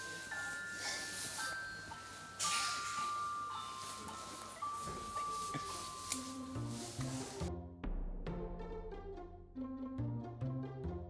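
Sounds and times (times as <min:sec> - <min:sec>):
background hiss: 0:00.0 - 0:07.5
low music notes: 0:00.0 - 0:11.0
music: 0:00.0 - 0:11.0.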